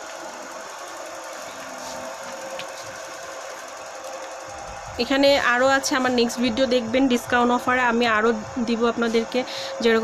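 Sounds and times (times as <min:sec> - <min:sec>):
background hum with faint tone: 0:00.0 - 0:10.0.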